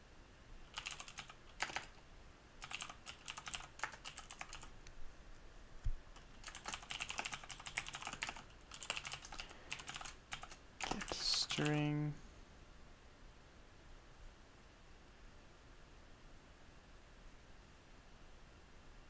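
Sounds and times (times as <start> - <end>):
keyboard keystroke clicks: 0.7 - 2.0.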